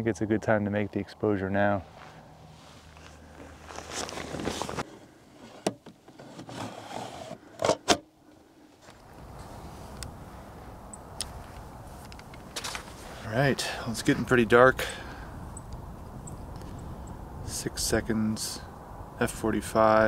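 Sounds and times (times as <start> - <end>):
hands rustling: 1.9 - 4.8.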